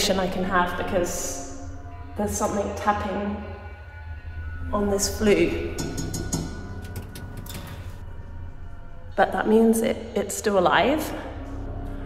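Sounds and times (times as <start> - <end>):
background music: 0.0 - 12.0
bird tapping on metal flue pipe: 5.8 - 7.7.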